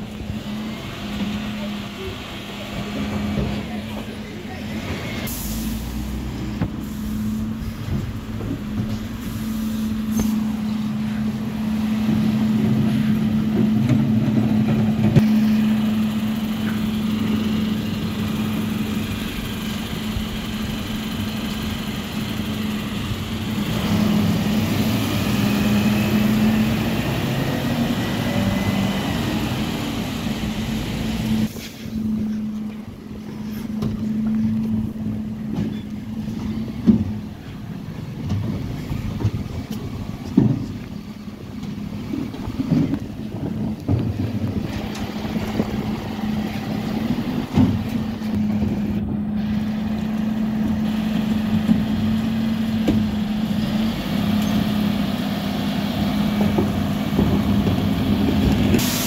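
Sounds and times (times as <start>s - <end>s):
truck engine hum: 0.0s - 59.0s.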